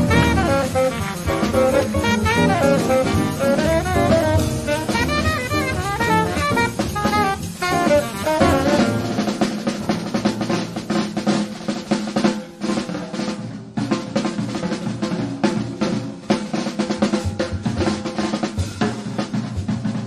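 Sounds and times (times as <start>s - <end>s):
jazz drum kit solo: 0.0s - 20.0s.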